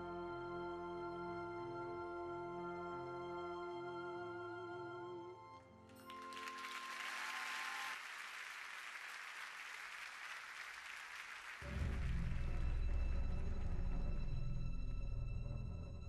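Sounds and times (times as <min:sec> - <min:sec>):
orchestra low sustained notes: 0:00.0 - 0:05.8
audience applauding: 0:05.9 - 0:12.3.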